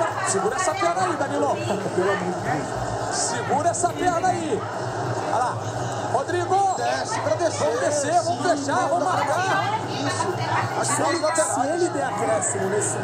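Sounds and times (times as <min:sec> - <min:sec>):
overlapping chatter: 0:00.0 - 0:13.0.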